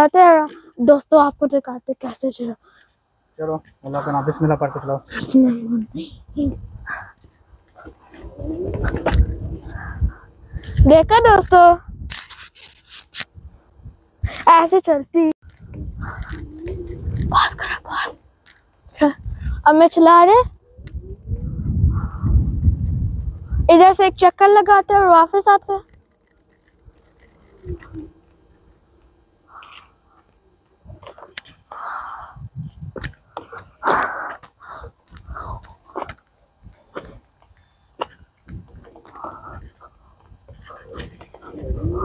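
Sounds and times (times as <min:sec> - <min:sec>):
wind buffeting microphone: 0:06.0 - 0:12.3, 0:15.4 - 0:18.1, 0:18.8 - 0:26.0, 0:26.8 - 0:29.2, 0:32.2 - 0:33.3, 0:38.1 - 0:42.0.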